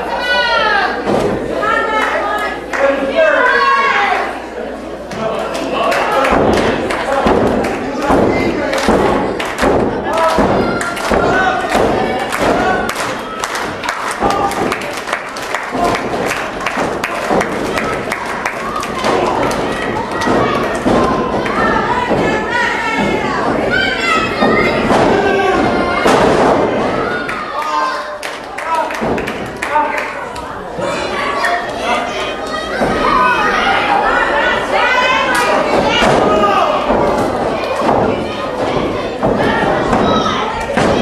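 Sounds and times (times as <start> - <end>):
spectators shouting: 5.7 - 41.0.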